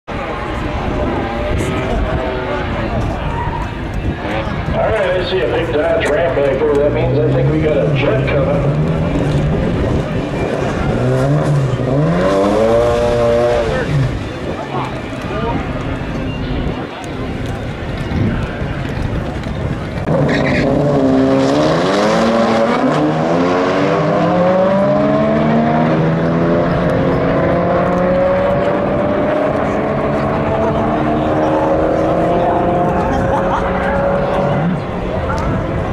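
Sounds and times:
car engine rumbling: 0.1s - 35.9s
people's voices: 0.1s - 35.9s.

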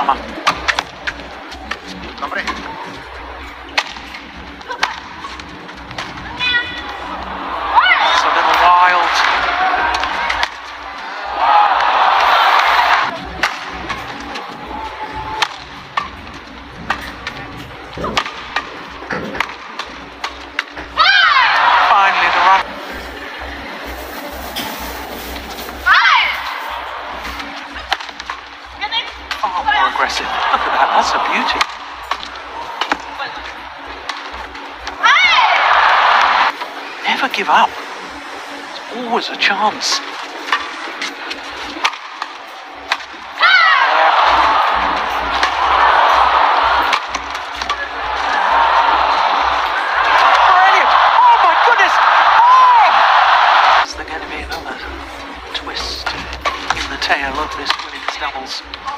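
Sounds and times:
crowd shouting and cheering: 0.0s - 58.9s
racket hitting shuttlecock: 9.2s - 11.1s, 15.4s - 16.2s, 18.1s - 20.8s, 41.8s - 43.2s, 46.7s - 47.9s.

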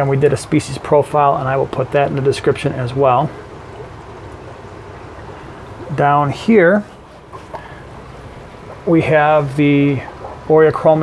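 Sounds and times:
sponge filters bubbling: 0.0s - 11.0s
air pumps hissing: 2.2s - 10.9s.

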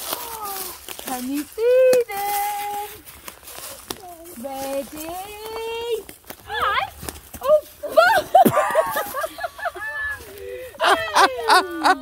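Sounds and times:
footsteps in dry leaves: 0.0s - 11.9s.

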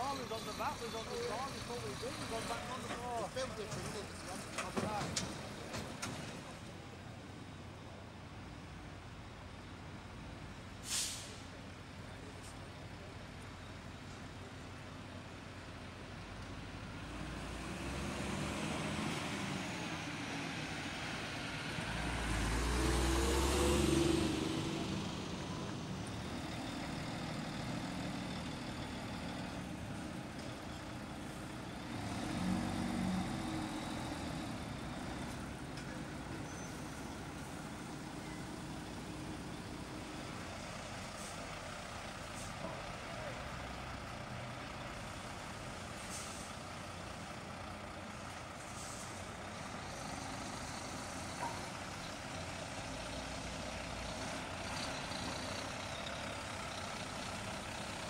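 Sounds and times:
lorry diesel engines passing: 0.0s - 58.0s
air brake hiss: 10.8s - 11.5s, 46.0s - 46.6s, 48.7s - 49.2s.

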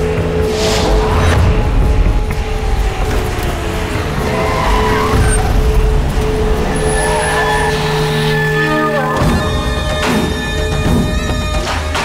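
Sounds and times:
vehicle engines rumbling: 0.0s - 11.7s
film background music: 0.0s - 12.0s.

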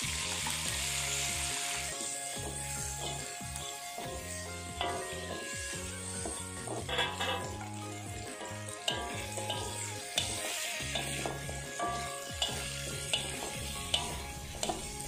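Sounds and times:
background music: 0.0s - 15.0s
vegetables sizzling in oil: 0.0s - 15.0s
metal spatula scraping a wok: 0.4s - 15.0s.

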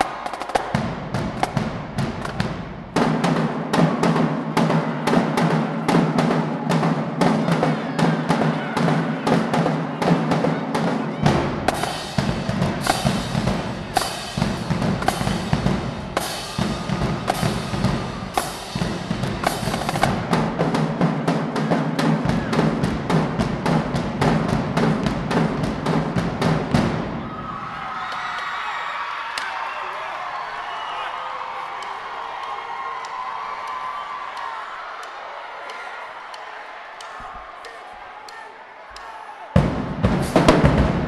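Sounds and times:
marching drumline playing: 0.0s - 27.7s, 39.6s - 41.0s
crowd voices: 0.0s - 41.0s.

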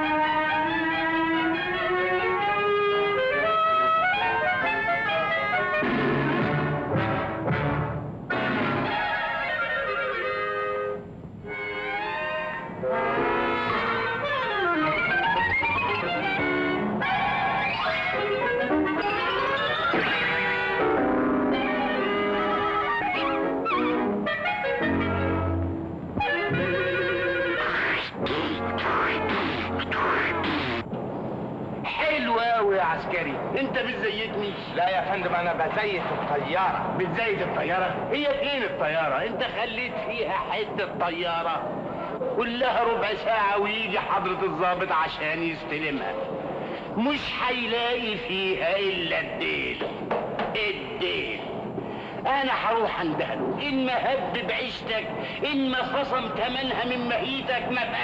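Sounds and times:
orchestral music with brass: 4.4s - 14.9s, 20.2s - 27.5s.

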